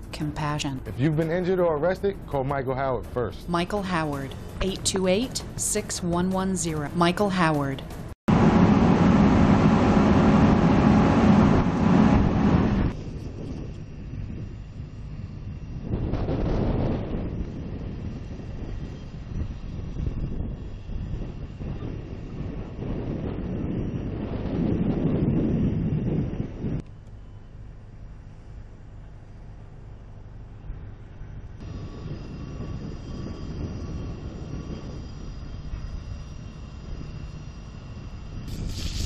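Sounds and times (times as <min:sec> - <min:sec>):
fire truck engine running: 0:08.3 - 0:15.4.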